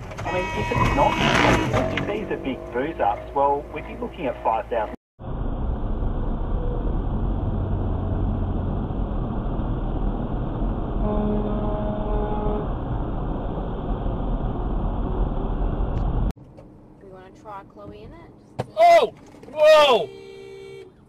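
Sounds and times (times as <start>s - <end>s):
road and engine noise: 0.0s - 21.0s
vehicle horn: 0.2s - 3.2s, 11.0s - 12.7s, 19.7s - 21.0s.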